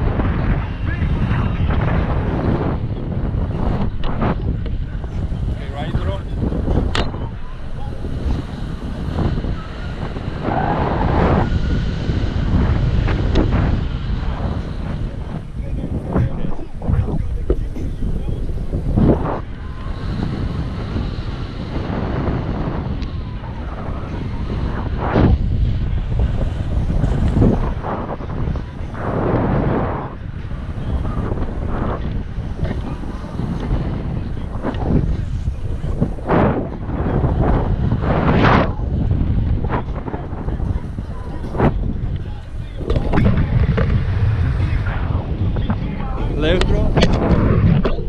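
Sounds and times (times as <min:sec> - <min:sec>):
wind rumble on microphone: 0:00.0 - 0:48.0.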